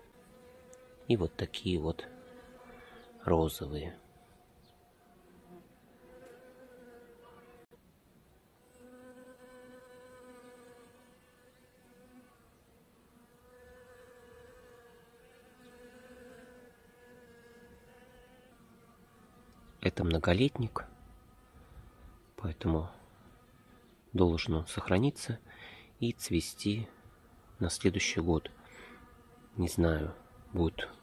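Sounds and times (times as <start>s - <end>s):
bees buzzing: 0.0s - 7.7s, 8.7s - 22.4s, 26.2s - 31.0s.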